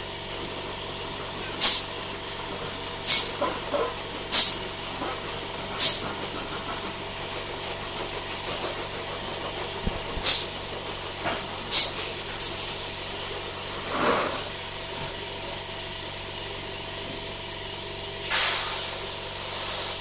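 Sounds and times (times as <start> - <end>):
pneumatic valves hissing: 1.6 - 1.9, 3.0 - 3.4, 4.3 - 4.6, 5.8 - 6.0, 9.8 - 10.6, 11.7 - 12.8, 18.2 - 20.0.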